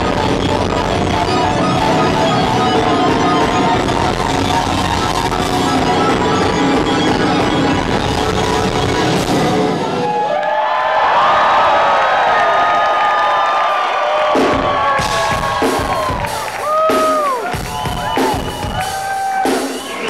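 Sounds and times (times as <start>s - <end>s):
sustained bending electric guitar: 0.0s - 10.0s
live rock band: 0.0s - 10.3s, 14.2s - 20.0s
crowd cheering and whooping: 0.0s - 20.0s.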